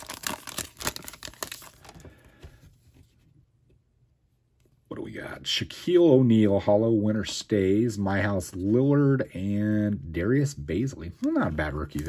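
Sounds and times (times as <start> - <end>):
foil wrapper tearing and crinkling: 0.0 - 2.0, 11.3 - 12.0.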